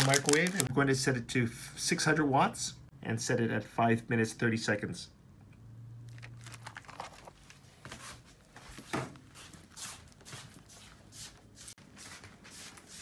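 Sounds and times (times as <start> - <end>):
plastic film rustling: 0.0 - 0.7, 6.1 - 10.9.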